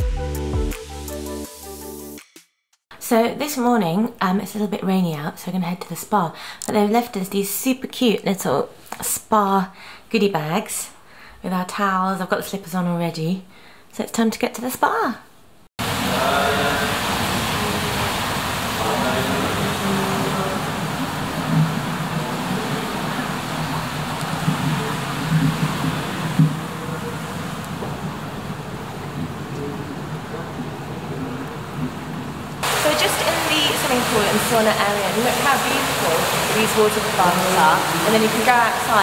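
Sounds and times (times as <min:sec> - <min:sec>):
water rushing in echoing hall: 0:15.8 - 0:39.0.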